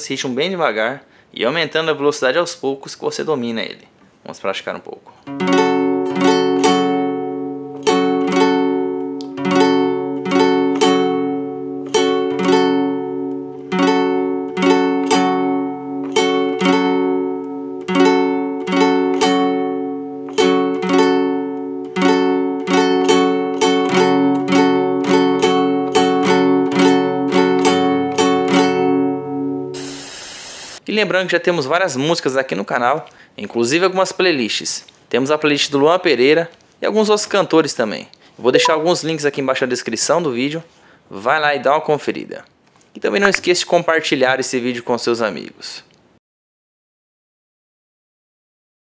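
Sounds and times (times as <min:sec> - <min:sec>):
acoustic guitar strumming: 0:05.3 - 0:30.0
short hiss: 0:29.8 - 0:30.8.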